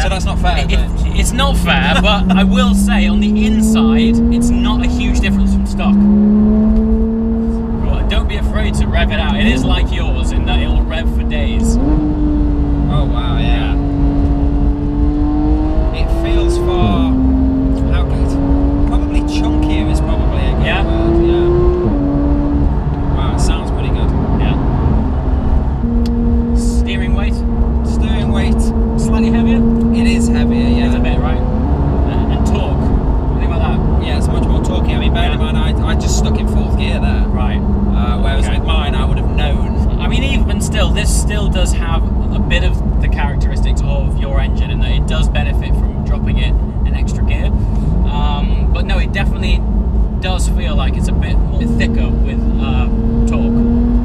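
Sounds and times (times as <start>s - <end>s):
sports car engine revving: 0.0s - 54.0s.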